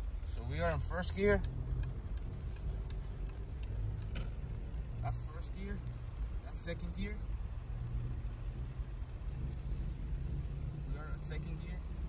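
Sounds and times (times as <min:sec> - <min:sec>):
car engine drone: 0:00.0 - 0:12.0
road rumble: 0:00.0 - 0:12.0.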